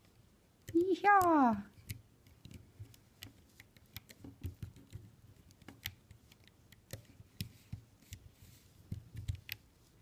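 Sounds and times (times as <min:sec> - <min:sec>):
plastic hook clicking on pegs: 0:00.0 - 0:08.2.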